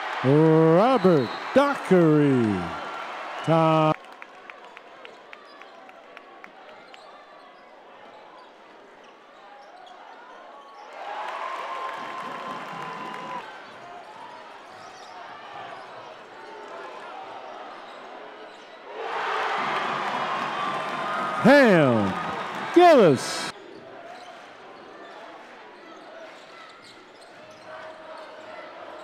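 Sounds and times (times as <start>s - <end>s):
crowd noise and voices: 0.0s - 11.0s, 19.6s - 29.0s.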